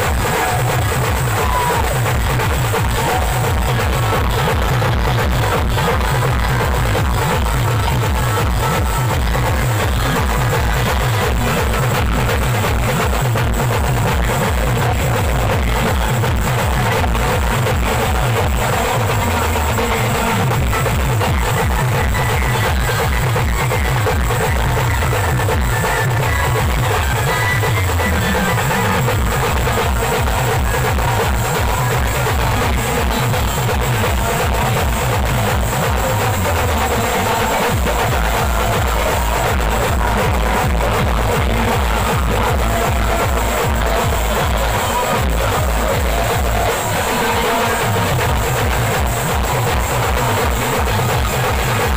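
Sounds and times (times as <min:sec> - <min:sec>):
band music: 0:00.0 - 0:51.9
bass drum beating fast rhythm: 0:00.0 - 0:51.9.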